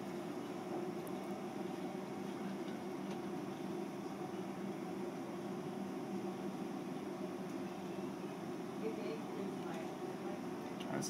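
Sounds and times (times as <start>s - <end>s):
ventilation fan hum: 0.0s - 11.0s.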